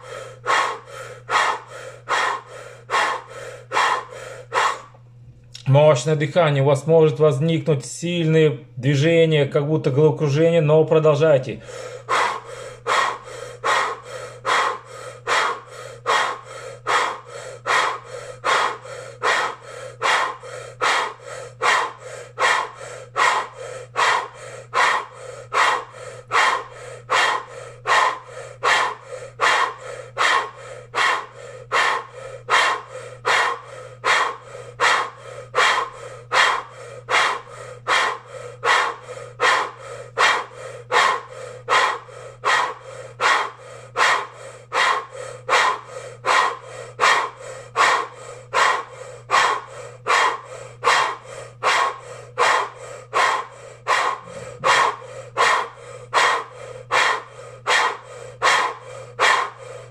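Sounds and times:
man breathing forcefully: 0.0 - 5.2, 11.3 - 59.9.

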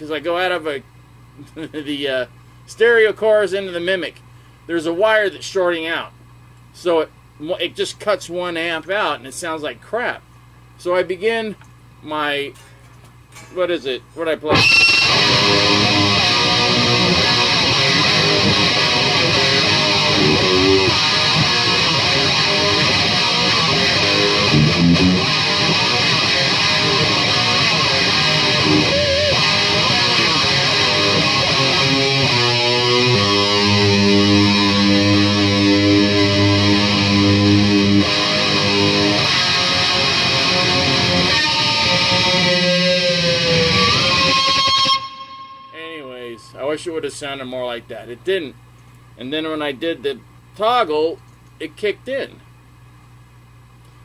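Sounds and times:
electric guitar rock riffing: 14.5 - 46.6.

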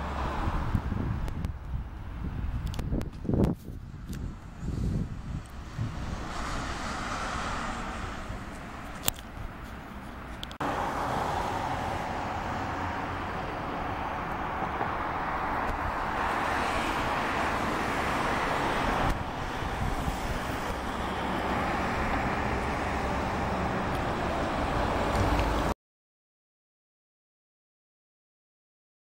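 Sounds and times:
car passing by: 0.0 - 1.2, 4.1 - 25.8
road traffic hiss: 0.0 - 25.7.

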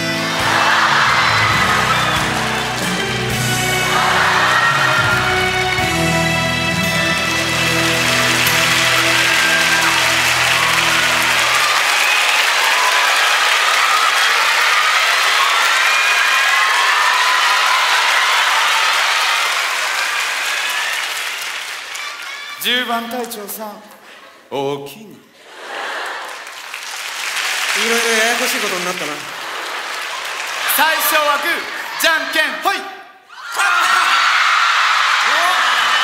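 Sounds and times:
audience applauding: 0.0 - 23.6, 25.4 - 32.6, 33.6 - 36.0.

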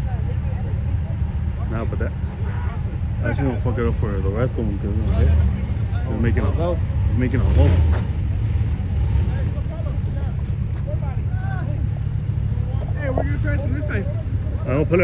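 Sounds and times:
faint voices talking: 0.0 - 15.0
truck engine rumbling under load: 0.0 - 15.0.

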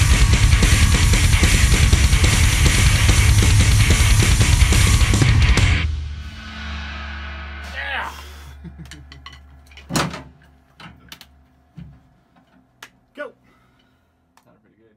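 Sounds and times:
punk band playing: 0.0 - 9.2
person laughing: 8.0 - 9.5.

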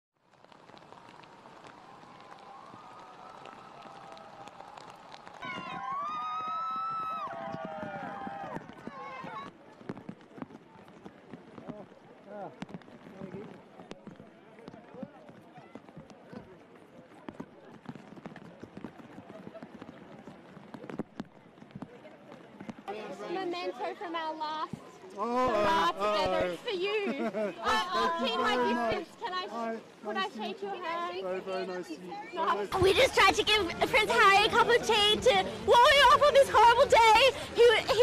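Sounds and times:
heavy rain on umbrellas: 0.2 - 31.1, 32.3 - 38.0
crowd chatter: 0.4 - 38.0.

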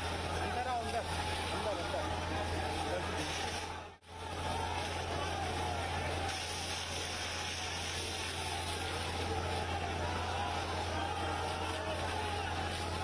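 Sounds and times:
crowd shouting: 0.0 - 13.0
water jet hissing: 0.0 - 13.0.

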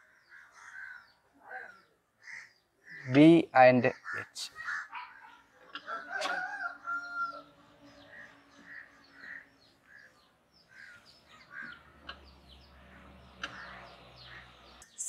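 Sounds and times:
faint bird calls: 0.0 - 15.0.

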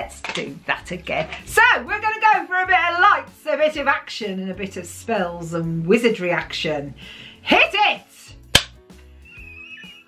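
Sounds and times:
clapperboard snapping shut: 8.6 - 8.8.

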